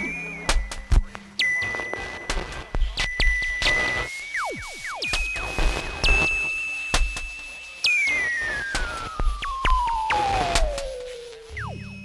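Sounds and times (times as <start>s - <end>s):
high whistle-like electronic tone: 3.0s - 12.0s
swooping electronic note: 8.0s - 12.0s.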